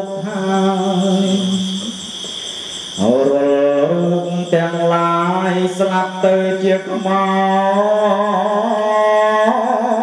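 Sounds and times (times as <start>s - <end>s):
young man chanting into a microphone: 0.0s - 2.0s, 3.0s - 10.0s.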